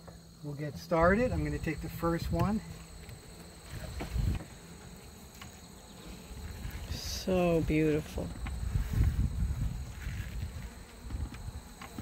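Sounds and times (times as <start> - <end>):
faint insect buzzing: 0.0 - 12.0.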